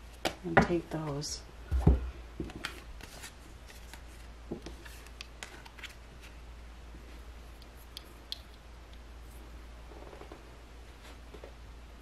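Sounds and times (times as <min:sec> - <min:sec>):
cardboard cards clicking and rustling: 0:02.4 - 0:06.4.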